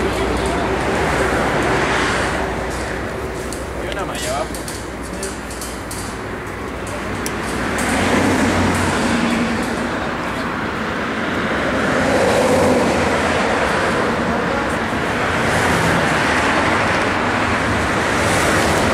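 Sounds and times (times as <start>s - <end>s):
motorway traffic: 0.0s - 18.9s.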